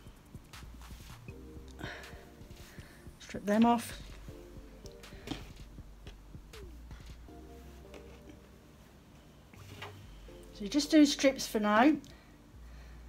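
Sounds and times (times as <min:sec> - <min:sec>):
quiet background music: 0:00.0 - 0:13.0.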